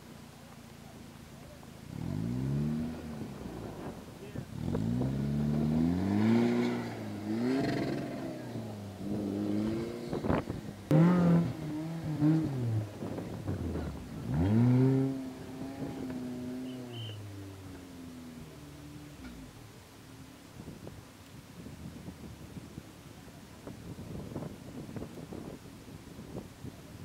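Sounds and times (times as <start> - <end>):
engine revving: 1.8 - 19.6.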